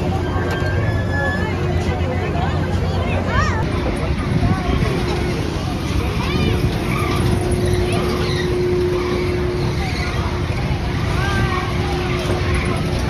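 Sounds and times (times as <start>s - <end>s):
ride machinery rumble: 0.0s - 13.0s
children's voices: 1.3s - 13.0s
steady machine hum: 1.5s - 13.0s.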